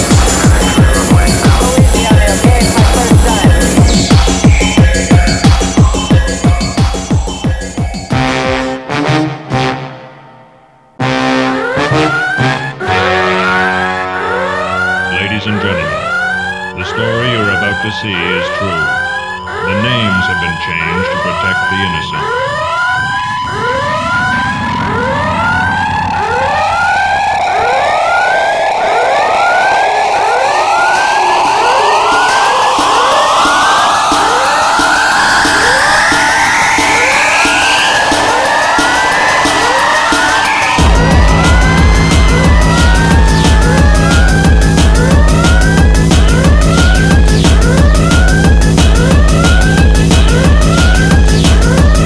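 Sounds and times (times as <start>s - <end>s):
kick drum: 0.0s - 8.7s, 40.6s - 52.0s
siren-like rising sweeps: 11.4s - 52.0s
long rising tone: 22.0s - 52.0s.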